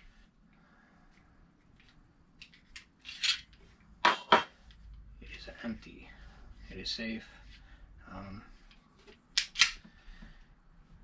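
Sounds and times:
pistol action metallic clicks: 0:09.4 - 0:09.8.

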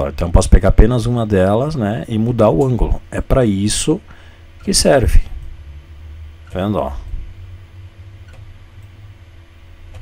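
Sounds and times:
low room tone hum: 0:00.0 - 0:10.0
computer mouse clicks: 0:08.3 - 0:09.0.

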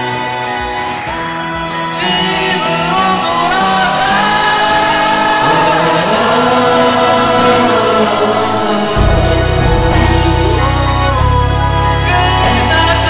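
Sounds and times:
choir-like layered singing: 0:01.7 - 0:13.0
sustained instrumental backing: 0:02.7 - 0:13.0.

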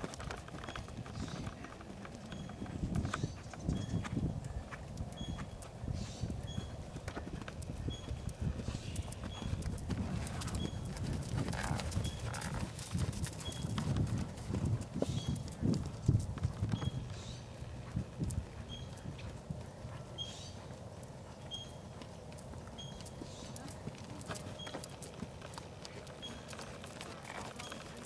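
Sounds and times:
muffled hoofbeats on sand: 0:00.0 - 0:28.0.

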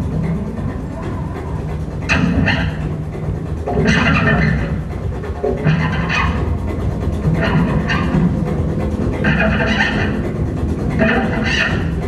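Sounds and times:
steady low bass: 0:00.0 - 0:12.0.

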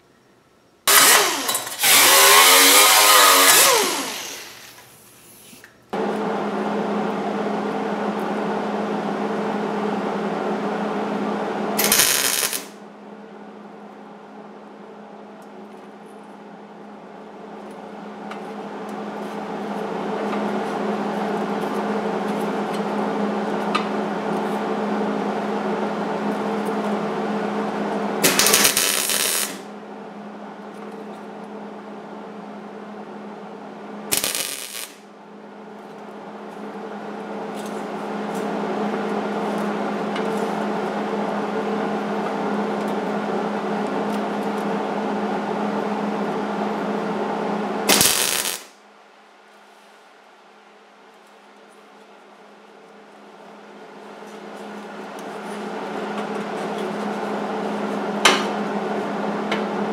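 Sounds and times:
welding arc crackling: 0:00.9 - 0:05.4, 0:11.8 - 0:12.8, 0:28.2 - 0:29.7, 0:34.1 - 0:35.0, 0:47.9 - 0:48.8
welder machine hum: 0:00.9 - 0:31.8, 0:32.8 - 0:48.8.

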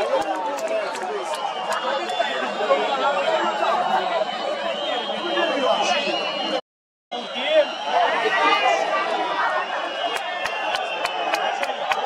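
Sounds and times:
stadium crowd chatter: 0:00.0 - 0:12.0.

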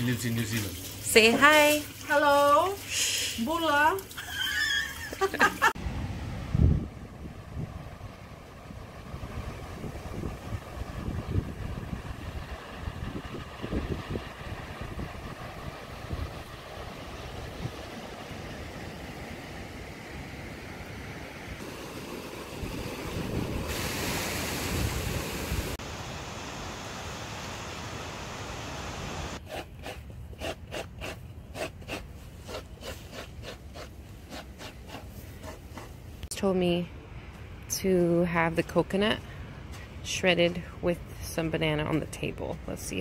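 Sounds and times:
surf washing on beach: 0:05.4 - 0:29.4
wind gusting over microphone: 0:05.7 - 0:29.4.

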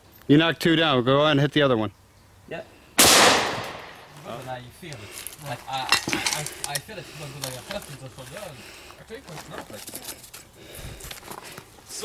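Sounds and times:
indistinct low-voiced talk: 0:03.9 - 0:11.2.

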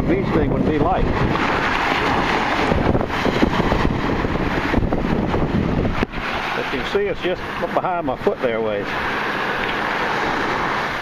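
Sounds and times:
wind on microphone: 0:00.0 - 0:07.8
surf at shoreline: 0:00.0 - 0:11.0.

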